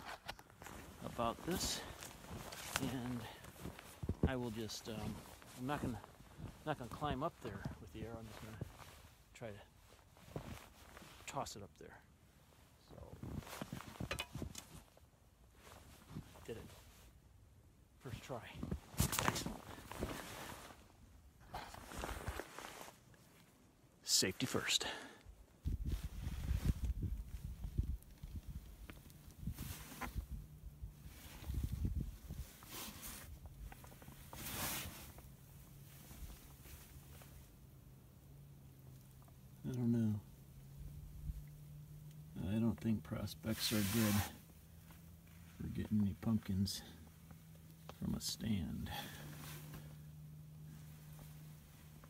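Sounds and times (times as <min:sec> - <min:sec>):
clothing rustling: 0:00.0 - 0:11.4, 0:12.3 - 0:17.2, 0:18.3 - 0:23.8, 0:25.8 - 0:42.4, 0:43.3 - 0:52.0.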